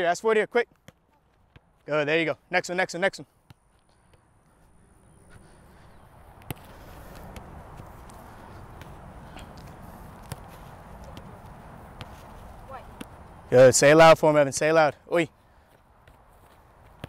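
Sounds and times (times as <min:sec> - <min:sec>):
low outdoor rush: 0:00.0 - 0:17.0
soccer balls kicked on grass: 0:00.7 - 0:02.0, 0:03.2 - 0:14.2, 0:15.6 - 0:17.0.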